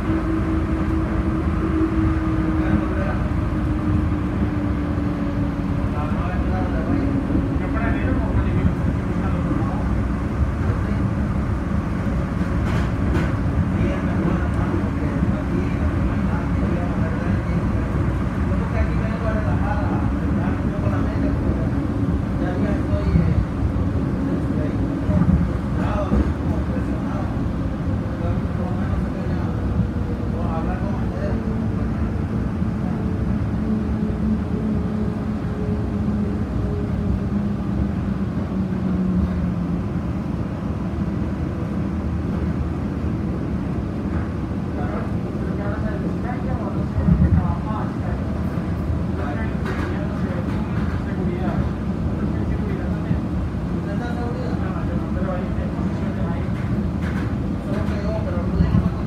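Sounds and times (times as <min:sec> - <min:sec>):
tram rolling rumble: 0:00.0 - 0:59.0.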